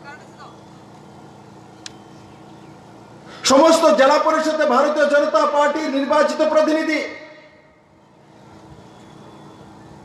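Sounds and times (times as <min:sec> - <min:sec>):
faint hum: 0:00.0 - 0:10.0
low rumble and hiss: 0:00.0 - 0:10.0.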